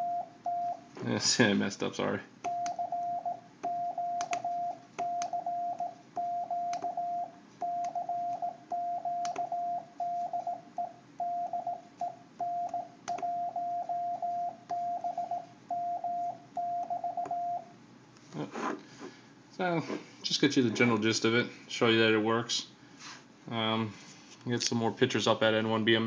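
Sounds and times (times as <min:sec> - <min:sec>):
morse code tone: 0:00.0 - 0:00.8, 0:02.5 - 0:11.7.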